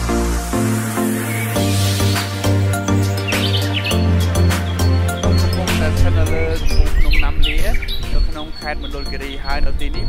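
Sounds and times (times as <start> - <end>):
background music: 0.0 - 10.0
birds chirping: 0.0 - 10.0.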